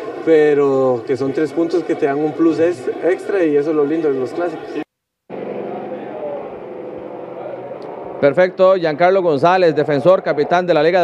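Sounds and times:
ambient murmur: 0.0 - 8.4.

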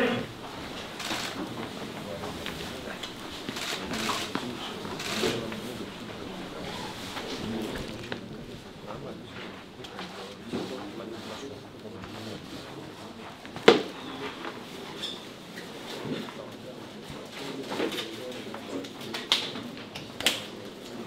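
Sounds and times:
murmured voices: 0.0 - 21.0.

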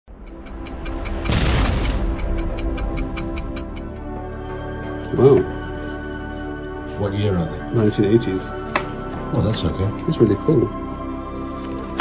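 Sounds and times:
fast ticking beat: 0.1 - 4.0
booming swell: 1.0 - 4.0.

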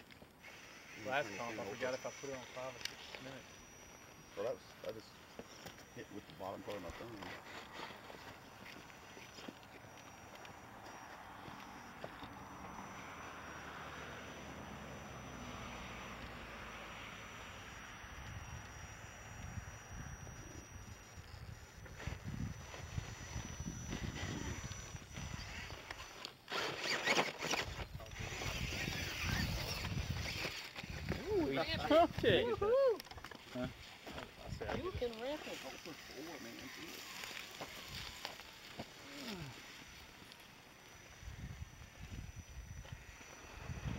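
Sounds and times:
electric motor whine: 0.0 - 43.9
footsteps in dry pine needles: 2.4 - 12.3, 33.4 - 41.3.

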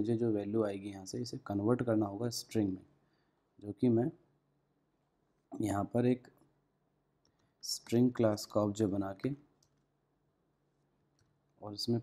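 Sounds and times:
man speaking: 0.0 - 2.9, 3.6 - 4.3, 5.5 - 6.4, 7.6 - 9.5, 11.6 - 12.0.

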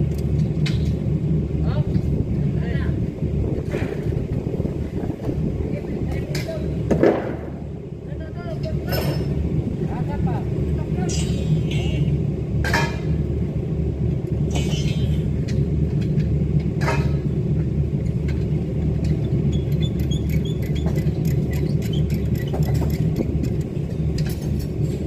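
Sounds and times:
machinery low rumble: 0.0 - 25.0.

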